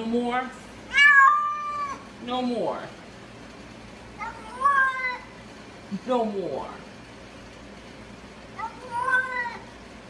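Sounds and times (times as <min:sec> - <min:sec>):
cat yowling: 0:00.9 - 0:02.1.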